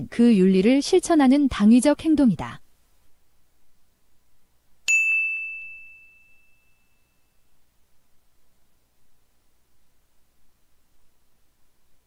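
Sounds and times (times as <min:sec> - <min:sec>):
bell-like chime: 0:04.9 - 0:07.4.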